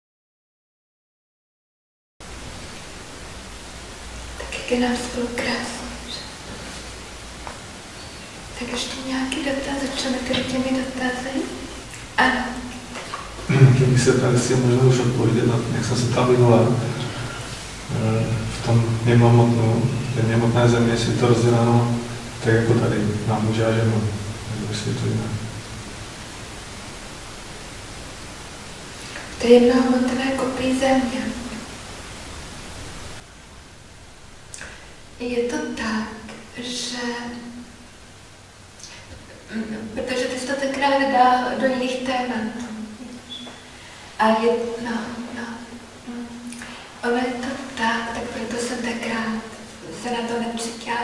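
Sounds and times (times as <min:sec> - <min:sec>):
steady hiss: 0:02.2 - 0:51.0
low hum: 0:02.3 - 0:33.3
person speaking: 0:04.4 - 0:06.9, 0:08.6 - 0:25.5, 0:29.0 - 0:31.6, 0:44.2 - 0:51.0
man's voice: 0:13.5 - 0:25.4.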